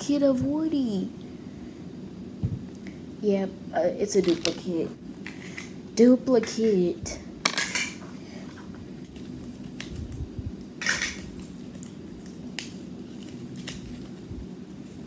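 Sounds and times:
low room hum: 0.0s - 15.0s
packaging rustling: 9.0s - 15.0s.

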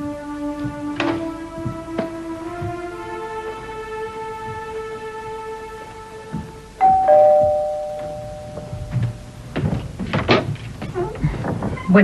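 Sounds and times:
wooden door unlatching and opening: 0.6s - 2.7s, 9.0s - 12.0s.

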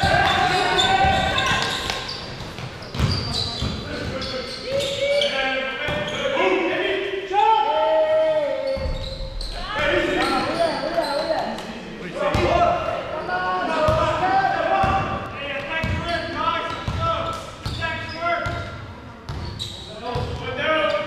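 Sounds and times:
people calling out: 0.0s - 2.1s.

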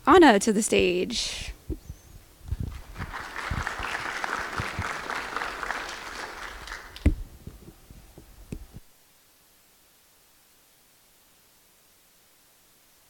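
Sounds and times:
audience applauding: 2.7s - 7.2s.

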